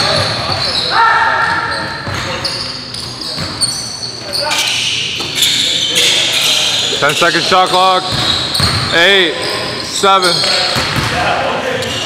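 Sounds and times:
sneakers squeaking on hardwood: 0:00.0 - 0:11.2
players' voices: 0:00.0 - 0:12.0
basketball bouncing: 0:08.1 - 0:08.9, 0:10.4 - 0:11.2.

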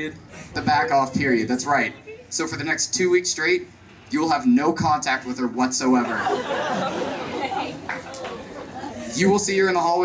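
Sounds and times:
audience voices talking: 0:06.0 - 0:10.0.

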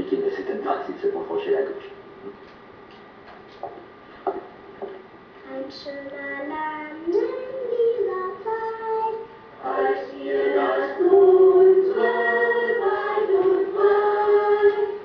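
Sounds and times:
young children singing in unison: 0:06.2 - 0:15.0.

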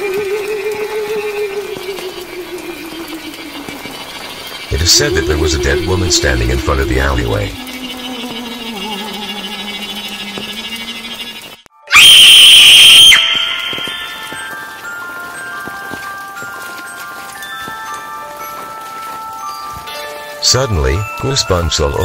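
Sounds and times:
low wavering drone: 0:04.7 - 0:11.6
high chime-like notes: 0:11.8 - 0:22.0.

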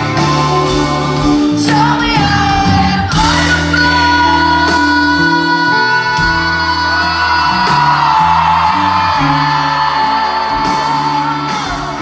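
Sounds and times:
bass guitar: 0:00.0 - 0:12.0
drums: 0:00.0 - 0:12.0
electric guitar: 0:00.0 - 0:12.0
woman singing: 0:01.2 - 0:12.0.

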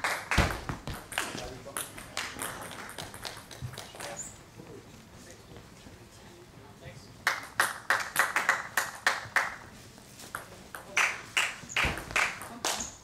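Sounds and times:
dull thud: 0:00.4 - 0:01.1.

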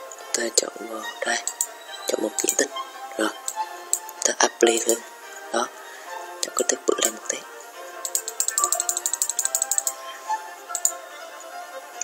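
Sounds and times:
background music: 0:00.0 - 0:12.0
computer mouse clicking: 0:01.4 - 0:01.7, 0:02.3 - 0:02.6, 0:03.5 - 0:05.0, 0:08.0 - 0:10.0.

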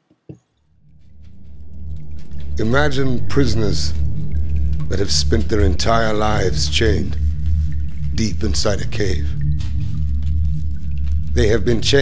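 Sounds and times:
low rumbling drone: 0:00.7 - 0:12.0.

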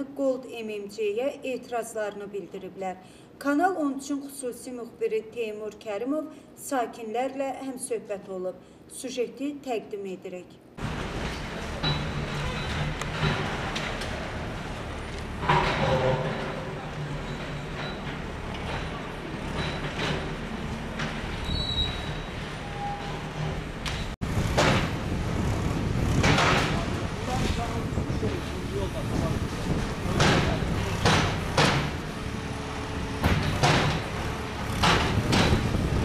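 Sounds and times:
backhoe loader engine running: 0:23.6 - 0:36.0.

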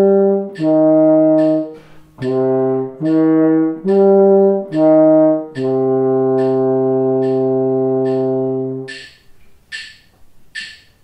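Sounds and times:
french horn long low note: 0:00.0 - 0:08.9
metronome clicking: 0:00.0 - 0:11.0.

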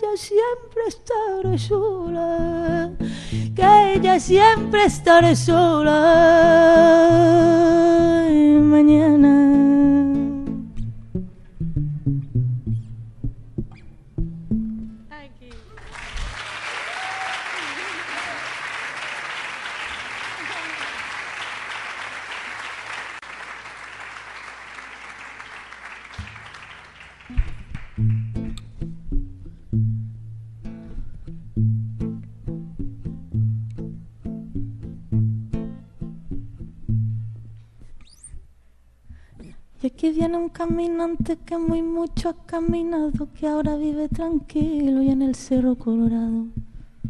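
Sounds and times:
classical guitar plucking: 0:00.0 - 0:15.1, 0:27.3 - 0:38.6, 0:39.2 - 0:46.8
audience applauding: 0:15.6 - 0:28.5.

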